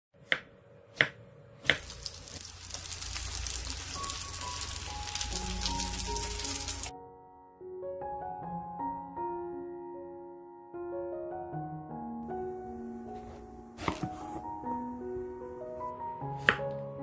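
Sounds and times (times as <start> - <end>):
slices sizzling in oil: 1.6 - 6.9
soft piano music: 1.9 - 17.0
knife cutting onto wooden board: 13.2 - 14.4, 16.4 - 16.7.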